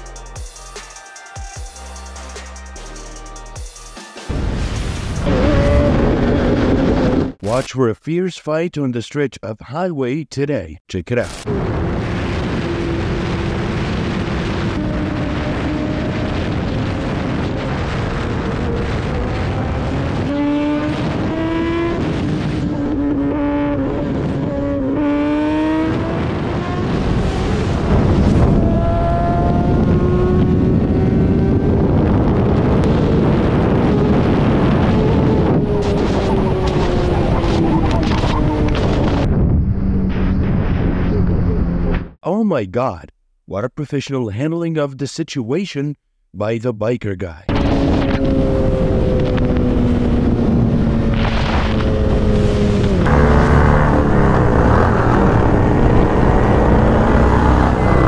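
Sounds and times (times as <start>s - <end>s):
wind noise on microphone: 4.3s - 7.4s, 11.4s - 42.2s, 47.5s - 58.0s
motorcycle engine accelerating: 5.0s - 7.4s, 11.5s - 42.2s, 47.5s - 58.0s.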